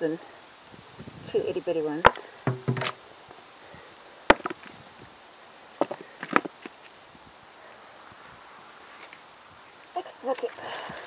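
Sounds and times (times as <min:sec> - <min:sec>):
potatoes dropping into plastic bucket: 0:02.1 - 0:03.0, 0:04.3 - 0:04.8.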